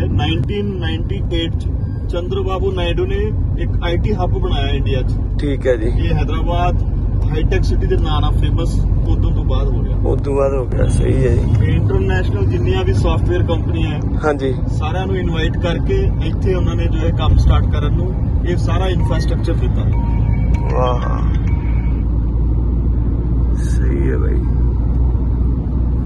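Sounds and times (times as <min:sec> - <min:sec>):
man talking: 0:00.0 - 0:20.0, 0:20.6 - 0:21.5, 0:23.6 - 0:24.5
car cabin road and engine rumble: 0:00.0 - 0:26.0.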